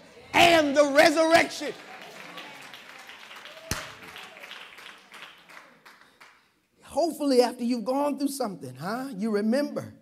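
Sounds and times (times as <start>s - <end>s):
scattered applause: 0.4s - 6.5s
sharp clap or knock: 3.6s - 4.2s.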